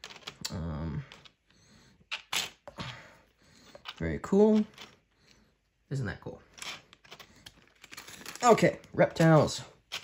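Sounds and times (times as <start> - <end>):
game pieces clicking into plastic bag: 6.6 - 10.0.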